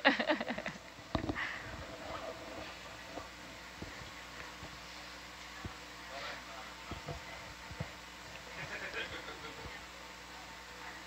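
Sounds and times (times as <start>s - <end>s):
intercom electrical hum and hiss: 0.0s - 11.0s.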